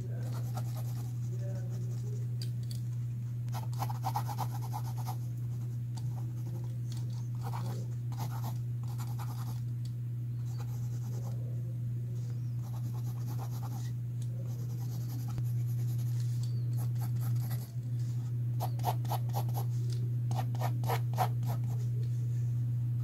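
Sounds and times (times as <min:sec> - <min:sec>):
steady low hum: 0:00.0 - 0:23.0
pencil scratching on paper: 0:00.2 - 0:02.0, 0:03.5 - 0:06.7, 0:07.4 - 0:09.6, 0:12.6 - 0:16.1, 0:18.6 - 0:19.7, 0:20.3 - 0:21.8.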